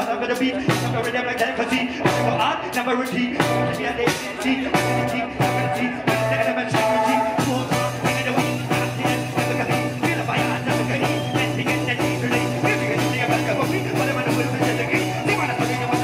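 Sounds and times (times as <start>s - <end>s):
crowd: 0.0s - 16.0s
live reggae band playing: 0.0s - 16.0s.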